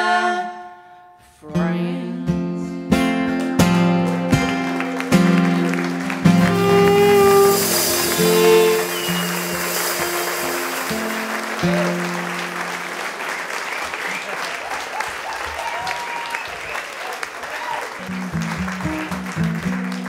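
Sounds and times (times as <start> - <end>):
fiddle guitar and drums song: 1.7 - 12.9
audience applauding: 4.0 - 20.0
audience whooping: 4.6 - 19.2.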